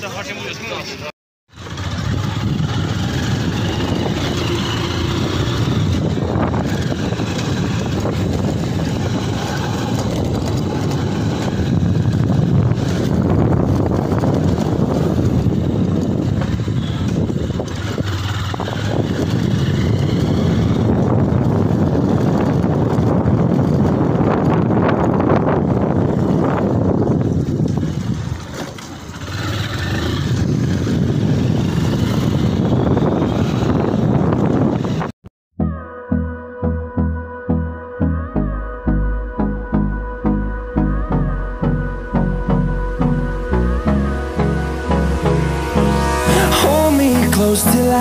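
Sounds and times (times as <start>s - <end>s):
motorcycle engine running: 0.0s - 35.8s, 38.9s - 48.0s
wind rumbling on microphone: 1.5s - 35.2s.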